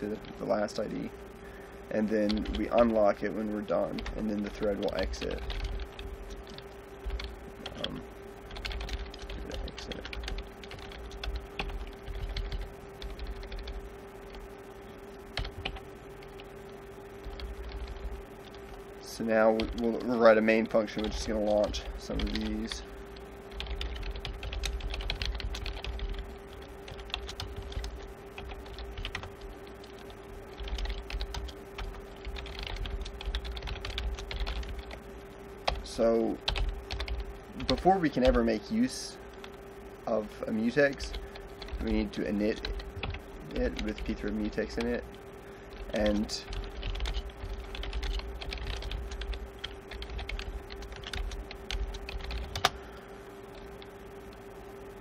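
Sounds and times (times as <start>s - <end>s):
steady low hum: 0.0s - 55.0s
keyboard typing clicks: 4.0s - 14.4s, 19.5s - 35.0s, 45.7s - 52.8s.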